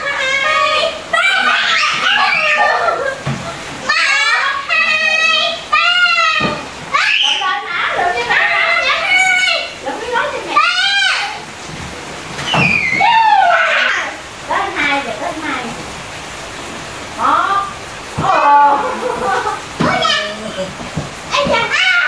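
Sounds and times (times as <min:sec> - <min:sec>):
children shouting and squealing: 0:00.0 - 0:11.6, 0:12.4 - 0:15.0, 0:18.2 - 0:22.0.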